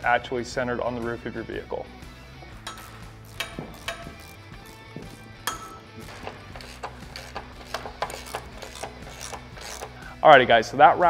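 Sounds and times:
background music: 0.0s - 11.0s
metallic wrench clicks: 2.6s - 4.8s, 5.4s - 10.0s.

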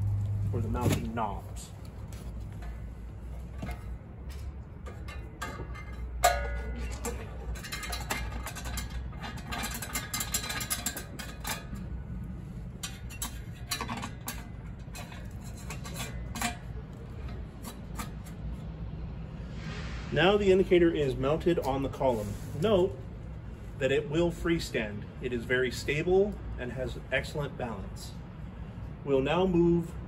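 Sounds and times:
steady low rumble: 0.0s - 23.9s
metal-on-metal scrapes: 2.5s - 22.8s
metal clicks and knocks: 3.5s - 12.0s, 12.8s - 18.4s.

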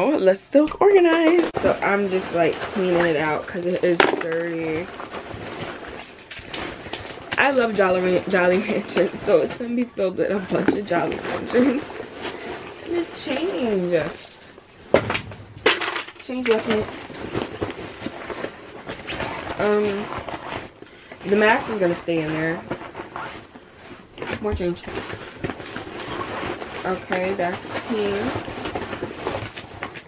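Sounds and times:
items being handled: 0.0s - 30.0s
fabric backpack rustling: 1.5s - 30.0s
small items clicking and knocking: 5.6s - 7.4s.

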